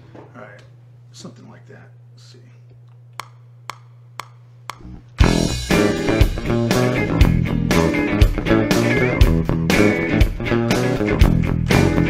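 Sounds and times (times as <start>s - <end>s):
low electrical hum: 0.0s - 5.6s
metronome clicks: 3.2s - 5.3s.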